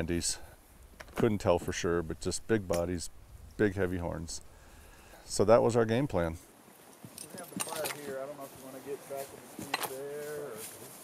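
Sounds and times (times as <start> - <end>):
horse tack jingling: 6.8 - 8.8, 9.5 - 10.3.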